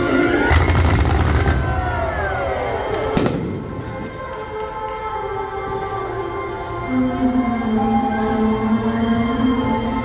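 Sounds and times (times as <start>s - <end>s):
music soundtrack: 0.0s - 10.0s
fireworks cracking: 0.4s - 4.4s
firework bang: 0.5s - 2.0s.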